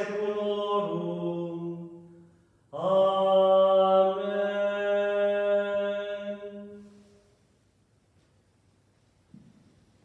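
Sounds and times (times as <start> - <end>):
man chanting a hymn: 0.0 - 2.1, 2.8 - 7.0.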